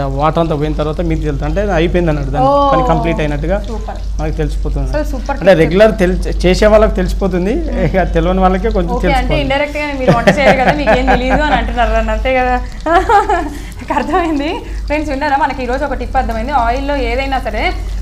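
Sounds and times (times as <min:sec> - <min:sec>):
chicken deep-frying in oil: 0:00.0 - 0:18.0
person talking: 0:02.2 - 0:04.1, 0:07.4 - 0:12.2.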